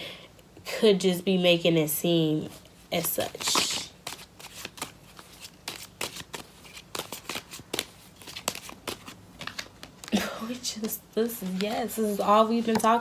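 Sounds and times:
cards being shuffled: 0:03.0 - 0:13.0.

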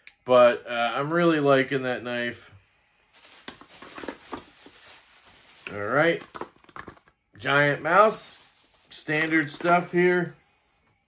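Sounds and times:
cardboard packaging rustling: 0:03.1 - 0:07.2, 0:07.8 - 0:10.0.

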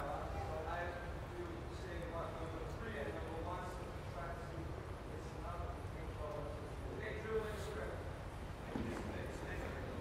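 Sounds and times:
low rumble of room noise: 0:00.0 - 0:10.0.

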